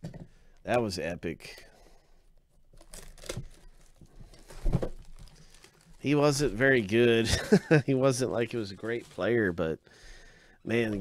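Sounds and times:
plastic wrap crinkling: 2.6 - 7.3, 8.0 - 9.8.

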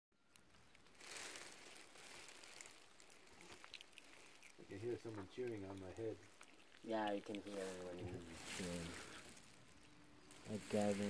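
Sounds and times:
faint outdoor hiss: 0.2 - 11.0.

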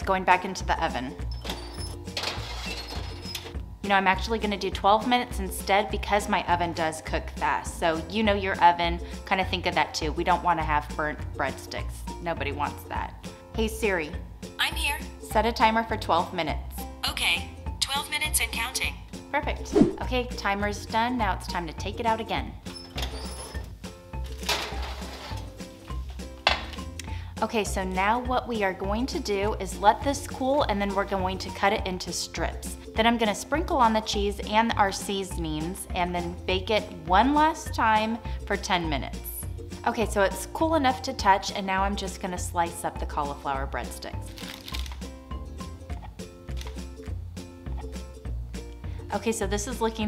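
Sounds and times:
background music: 0.0 - 50.0
metal baking sheet clattering: 1.4 - 3.5, 24.3 - 25.6.

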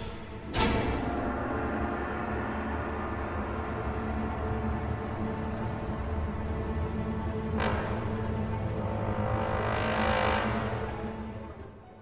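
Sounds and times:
low drone: 0.0 - 11.9.

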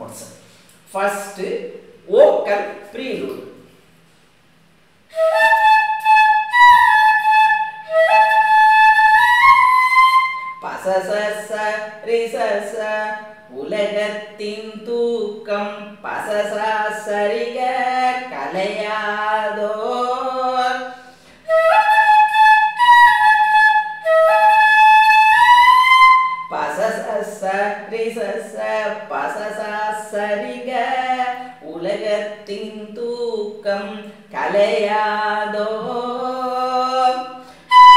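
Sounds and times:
person speaking: 0.0 - 3.7
breathy bamboo flute: 5.1 - 10.6, 21.4 - 26.5, 37.5 - 37.9.

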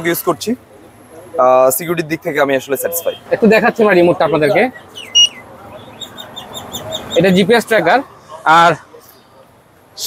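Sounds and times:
high electronic beep: 4.0 - 5.4
quick high chirps: 4.0 - 7.2.

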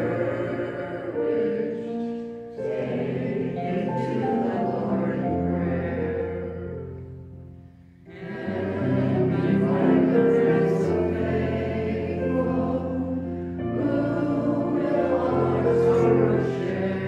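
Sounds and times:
group singing a hymn: 0.0 - 7.3, 7.9 - 17.0.

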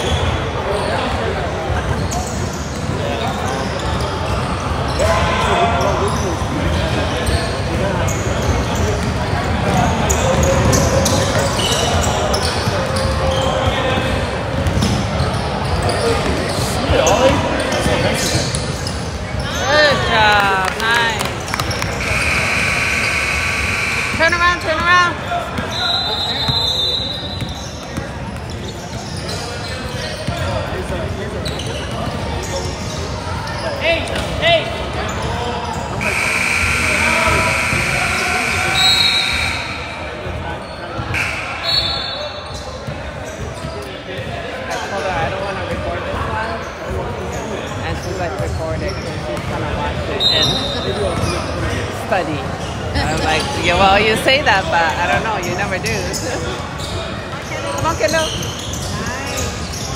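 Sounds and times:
voices in a gym: 0.0 - 59.9.

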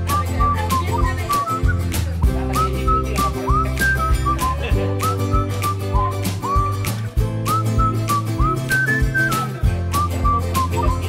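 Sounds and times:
steady beat with bass: 0.0 - 11.0
whistled melody: 0.0 - 11.0.

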